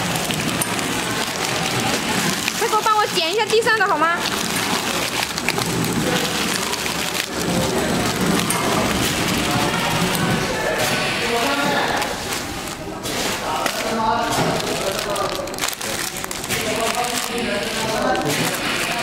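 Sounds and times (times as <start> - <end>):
packing machine whirring: 0.0 - 19.0
people talking: 1.0 - 5.2, 5.8 - 19.0.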